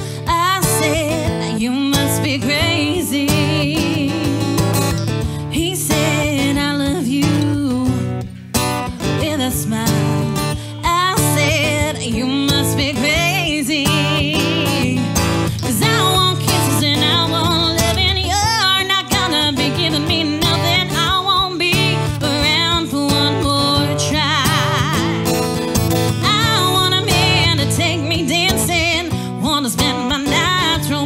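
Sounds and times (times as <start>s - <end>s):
strummed acoustic guitar: 0.0s - 31.0s
woman singing country song: 0.0s - 31.0s.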